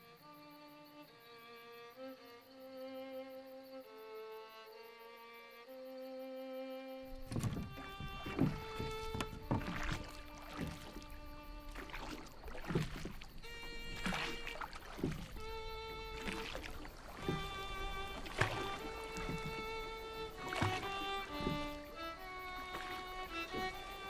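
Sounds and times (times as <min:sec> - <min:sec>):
slow sustained music: 0:00.0 - 0:24.0
oars pulling through water: 0:07.0 - 0:24.0.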